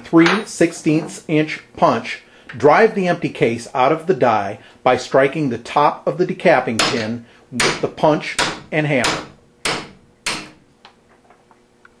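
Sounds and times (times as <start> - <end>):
hammer striking metal punch: 6.7 - 10.6.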